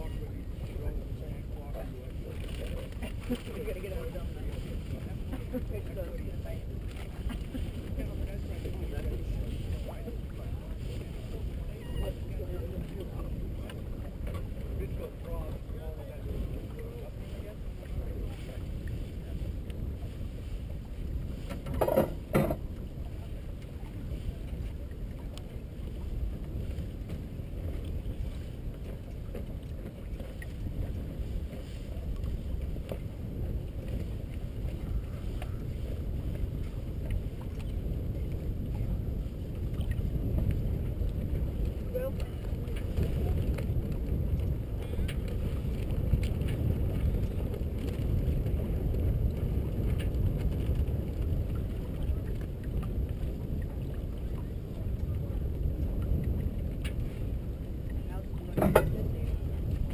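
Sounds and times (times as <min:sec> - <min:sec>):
water rushing along hull: 0:00.0 - 0:59.9
wind buffeting microphone: 0:00.0 - 0:59.9.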